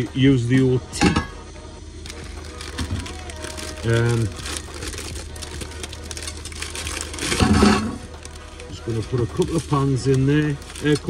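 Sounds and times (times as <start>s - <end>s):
low steady hum: 0.0s - 11.0s
objects clattering: 2.1s - 8.4s.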